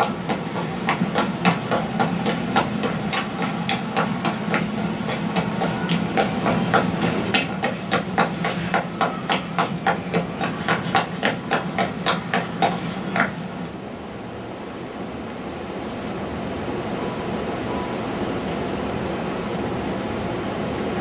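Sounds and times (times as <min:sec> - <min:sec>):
rapid clacking knocks: 0:00.0 - 0:13.5.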